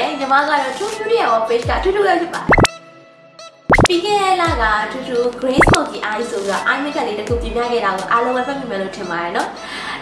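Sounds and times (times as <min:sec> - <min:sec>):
rising bloop pop effects: 0:02.5 - 0:02.7, 0:05.6 - 0:05.8.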